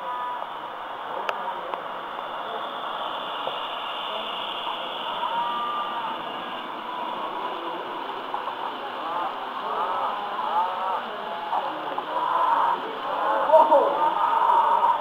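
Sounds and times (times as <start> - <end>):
model train rolling on track: 0.0 - 15.0
people talking in background: 0.0 - 15.0.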